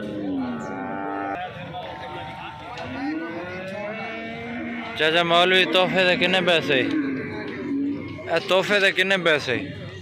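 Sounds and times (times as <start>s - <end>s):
cattle mooing: 0.0s - 8.8s
crowd noise: 0.0s - 10.0s.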